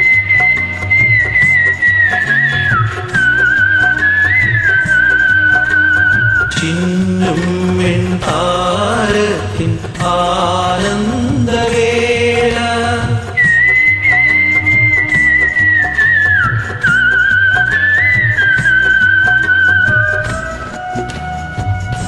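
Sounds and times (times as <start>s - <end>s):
whistle-like lead melody: 0.0s - 7.5s, 13.2s - 22.0s
steady rhythm backing track: 0.0s - 22.0s.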